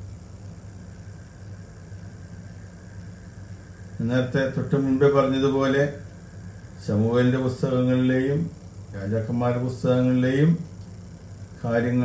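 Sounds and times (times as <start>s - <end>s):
faint hiss: 0.0s - 12.0s
low hum: 0.0s - 12.0s.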